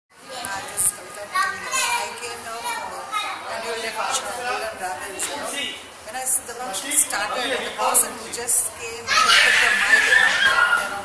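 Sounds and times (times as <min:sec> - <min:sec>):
young children chattering: 0:00.1 - 0:05.7, 0:06.4 - 0:11.0.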